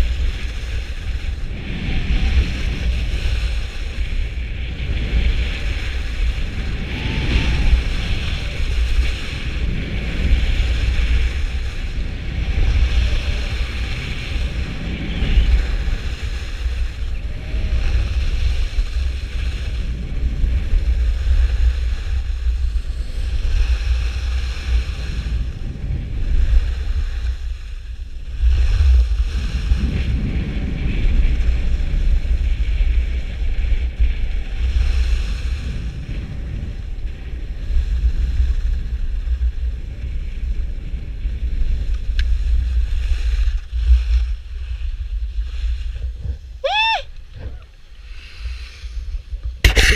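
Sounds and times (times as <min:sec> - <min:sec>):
skis scraping on snow: 0:00.0 - 0:46.6
wind buffeting microphone: 0:00.0 - 0:49.9.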